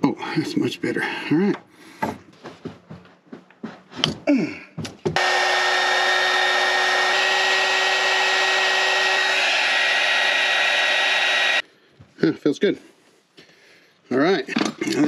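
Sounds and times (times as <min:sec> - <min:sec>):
heat gun blowing air: 0:05.2 - 0:11.6.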